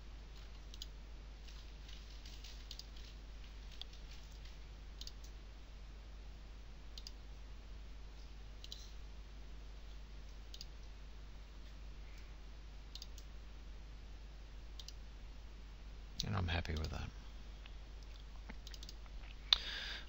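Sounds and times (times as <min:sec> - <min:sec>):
faint low hum: 0:00.0 - 0:20.0
computer mouse clicking: 0:00.3 - 0:01.0, 0:02.4 - 0:03.1, 0:03.7 - 0:05.4, 0:07.0 - 0:07.2, 0:08.6 - 0:09.0, 0:10.3 - 0:10.9, 0:12.9 - 0:13.3, 0:14.8 - 0:15.0, 0:18.6 - 0:19.0.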